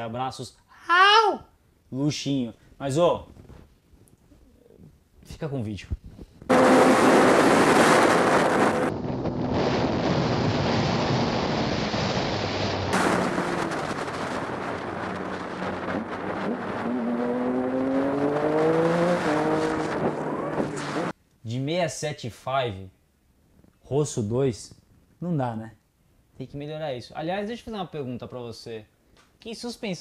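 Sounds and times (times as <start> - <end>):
wind rush over microphone: 6.0 - 21.1
motorcycle engine: 6.5 - 9.5, 12.9 - 21.1.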